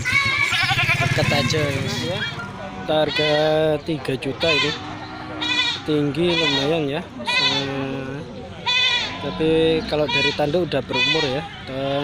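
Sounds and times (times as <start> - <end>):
goats bleating: 0.0 - 12.0.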